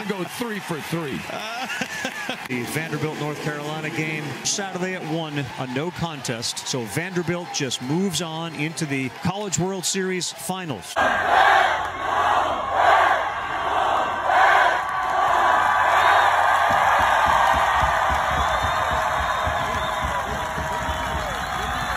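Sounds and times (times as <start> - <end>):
crowd cheering and yelling: 0.0 - 21.9.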